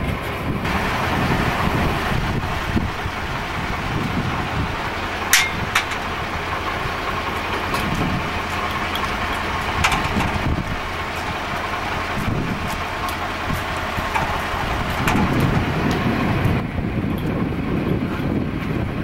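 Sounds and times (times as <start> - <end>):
low hum: 0.0 - 17.3
engine drone: 0.0 - 19.0.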